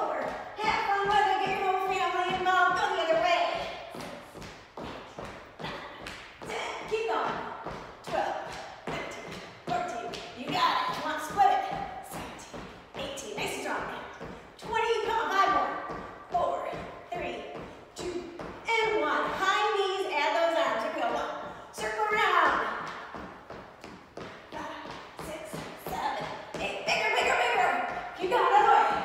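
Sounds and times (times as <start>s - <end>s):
woman's voice: 0.0s - 4.0s, 5.6s - 22.8s, 24.5s - 29.0s.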